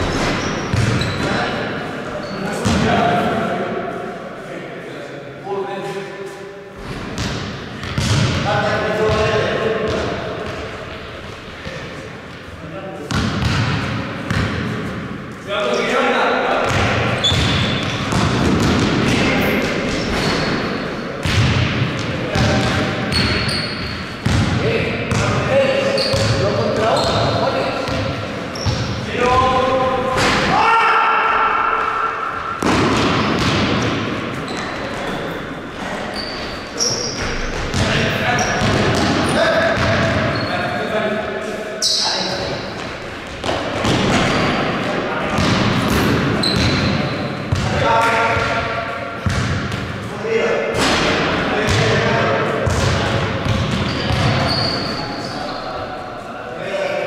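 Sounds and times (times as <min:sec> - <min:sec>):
basketball bouncing on floor: 0:00.4 - 0:01.2, 0:07.2 - 0:08.4, 0:13.1 - 0:14.6, 0:16.6 - 0:19.3, 0:21.2 - 0:23.4, 0:32.6 - 0:33.9, 0:49.2 - 0:49.9, 0:52.6 - 0:54.4.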